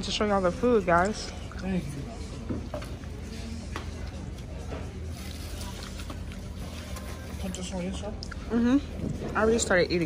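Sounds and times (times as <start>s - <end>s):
faint background chatter: 0.0s - 10.0s.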